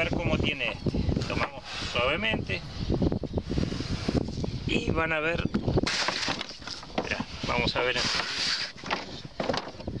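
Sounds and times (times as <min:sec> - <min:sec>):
knocks and scuffling in wooden chute: 0:05.9 - 0:09.9.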